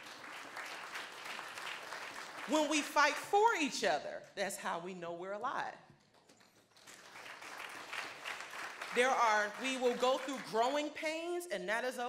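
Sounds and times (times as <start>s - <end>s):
audience applauding: 0.0s - 3.0s, 6.5s - 10.6s.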